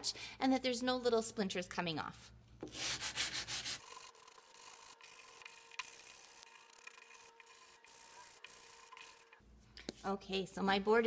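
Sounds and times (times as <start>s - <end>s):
sandpaper rasping on wood: 2.7s - 9.4s.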